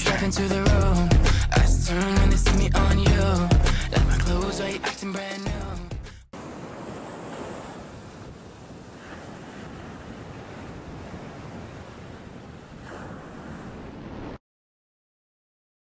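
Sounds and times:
ocean surf breaking: 3.4 - 14.4.

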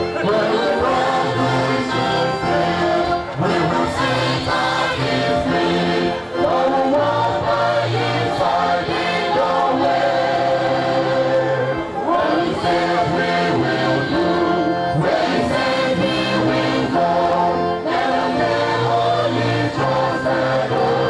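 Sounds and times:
choir singing gospel: 0.0 - 21.0
low steady accompaniment: 0.0 - 21.0.

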